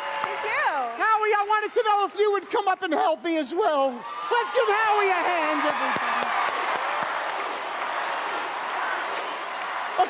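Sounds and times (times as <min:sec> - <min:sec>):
studio audience applauding: 0:00.0 - 0:10.0.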